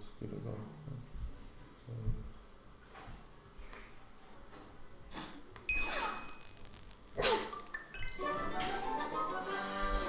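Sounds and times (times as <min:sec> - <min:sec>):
bright glittering chime: 0:05.7 - 0:08.6.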